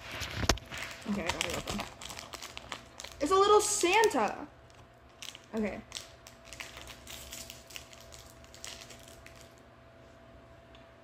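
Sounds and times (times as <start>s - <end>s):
plastic candy wrapper crinkling: 0.0s - 9.6s.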